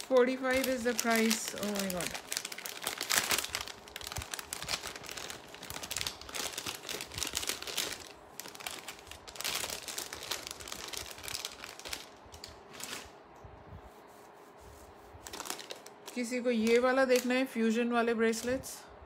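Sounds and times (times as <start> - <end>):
plastic packets crinkling: 0.0 - 13.2, 15.2 - 17.4.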